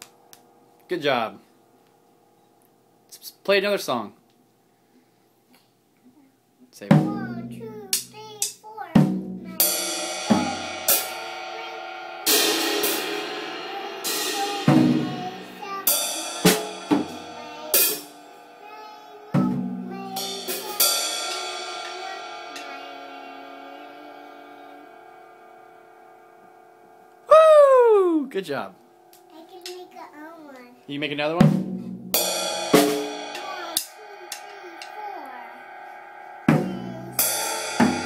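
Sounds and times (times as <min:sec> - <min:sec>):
child playing drum kit: 0:06.8 - 0:38.0
cymbal wash ringing: 0:09.6 - 0:18.6, 0:19.6 - 0:27.3, 0:28.3 - 0:30.0, 0:32.0 - 0:38.0.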